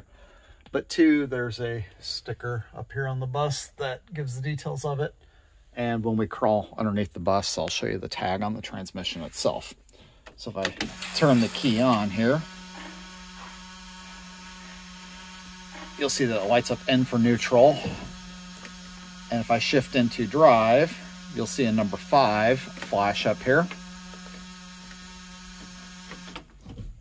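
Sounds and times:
low electrical hum: 0:08.2 - 0:26.8.

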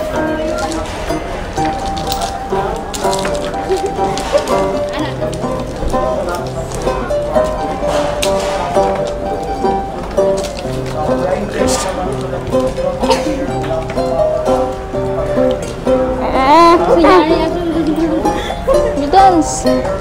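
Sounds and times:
bass notes: 0:00.0 - 0:20.0
plucked string melody: 0:00.0 - 0:20.0.

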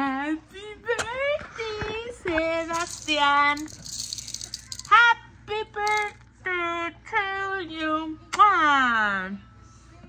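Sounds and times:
rattling shake: 0:02.7 - 0:04.9.

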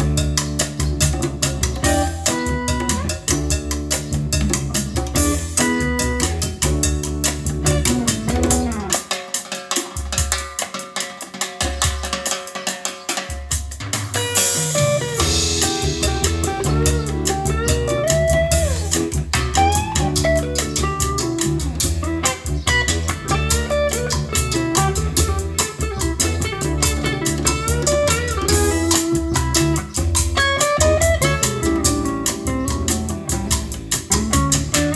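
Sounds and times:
guitar bass and drums music: 0:00.0 - 0:34.9.

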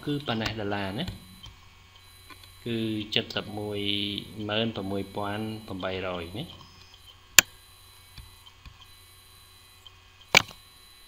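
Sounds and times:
person speaking: 0:00.0 - 0:01.3, 0:02.6 - 0:06.7
low mains hum: 0:00.0 - 0:11.0.

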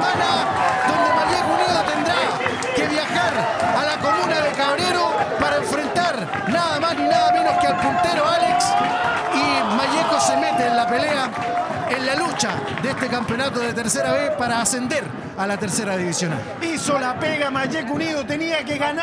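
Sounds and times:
football crowd chanting and shouting: 0:00.0 - 0:19.0.

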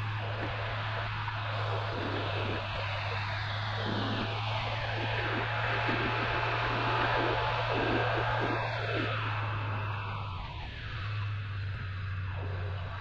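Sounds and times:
wind and road noise: 0:00.0 - 0:13.0.

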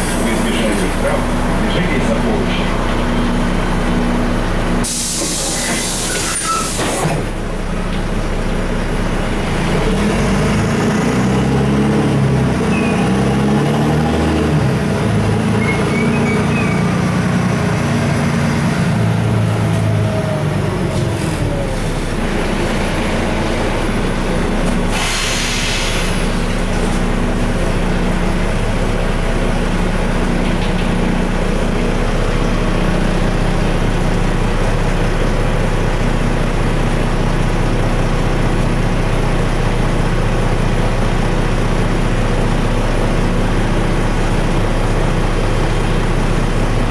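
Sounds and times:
bus engine running: 0:00.0 - 0:46.9
road noise: 0:00.0 - 0:46.9
short hiss: 0:04.9 - 0:07.0, 0:24.9 - 0:26.2.

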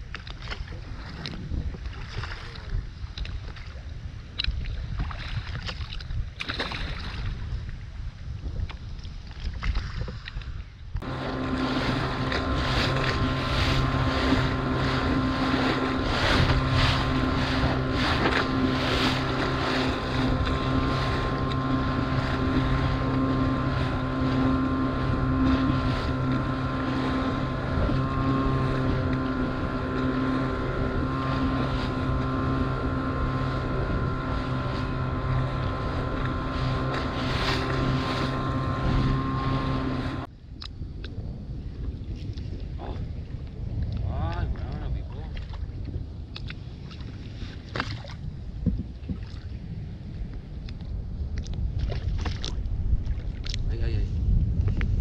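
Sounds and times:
water rushing along hull: 0:00.0 - 0:55.0
wind on microphone: 0:00.0 - 0:55.0
outboard motor running: 0:10.9 - 0:40.3.

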